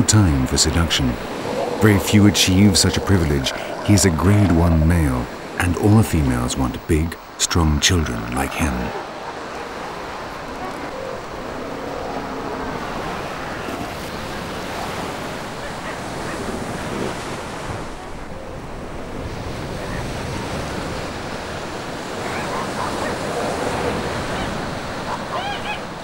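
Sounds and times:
waves breaking on beach: 0.0s - 26.0s
wind: 0.0s - 26.0s.

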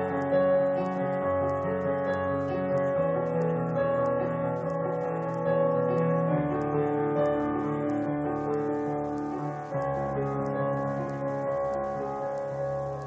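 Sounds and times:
piano playing slow chords: 0.0s - 13.0s.

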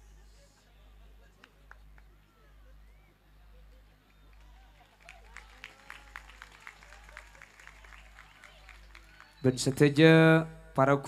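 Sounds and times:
audience clapping: 1.4s - 2.3s, 3.8s - 10.2s.

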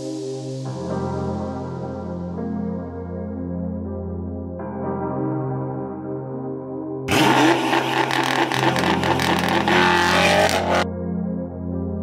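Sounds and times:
car engine accelerating hard: 7.1s - 10.8s.

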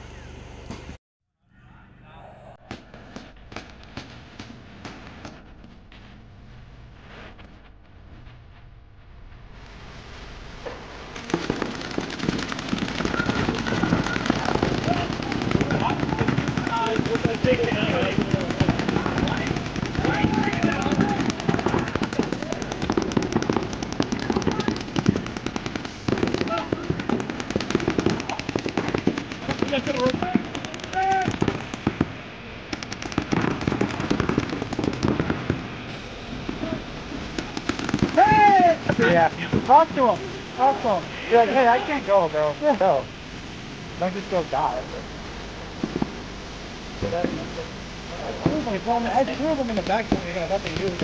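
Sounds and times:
paintball markers firing: 11.3s - 32.1s, 32.7s - 35.5s.

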